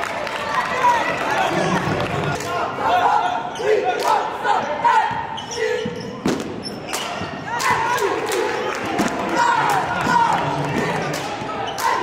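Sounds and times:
voices in a gym: 0:00.0 - 0:12.0.

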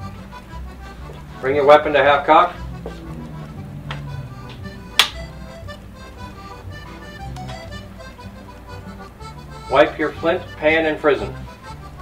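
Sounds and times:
background music low notes: 0:00.0 - 0:12.0.

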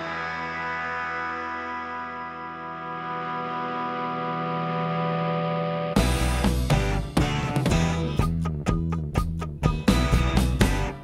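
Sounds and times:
distorted electric guitar chord: 0:00.0 - 0:08.3
rock band with drums: 0:02.9 - 0:11.0.

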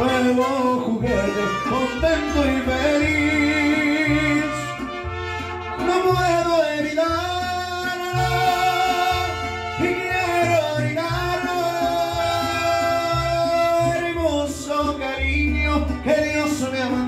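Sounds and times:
steady bass line: 0:00.0 - 0:17.0
trumpets wavering melody: 0:00.1 - 0:06.5, 0:08.0 - 0:10.6.

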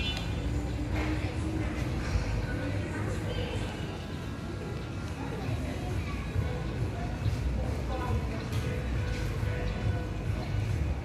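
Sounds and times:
music: 0:04.2 - 0:11.0.

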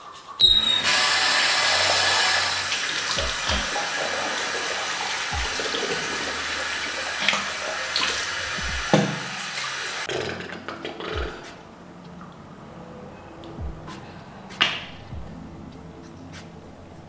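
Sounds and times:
tap water running into sink: 0:00.7 - 0:10.1.

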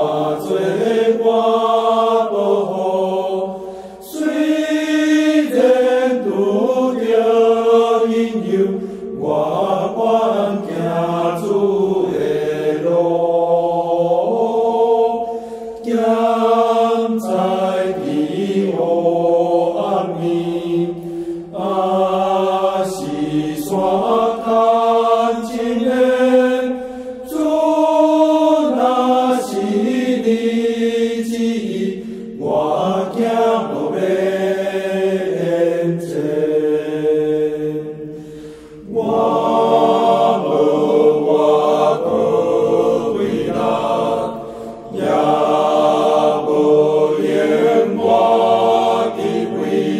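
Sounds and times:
congregation singing a hymn: 0:00.0 - 0:49.9.

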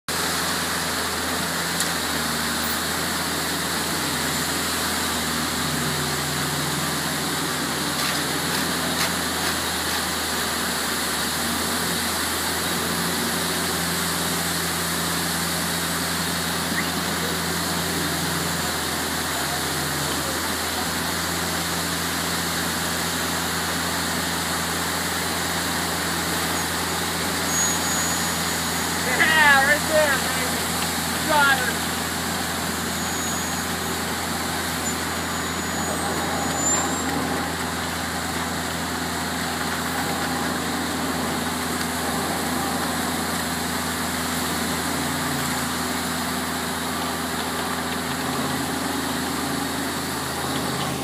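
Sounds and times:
heavy machinery engines running: 0:00.1 - 0:51.0.

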